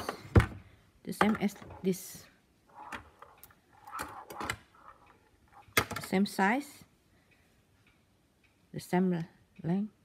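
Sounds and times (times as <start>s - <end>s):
knitting needles clicking: 1.1s - 10.0s.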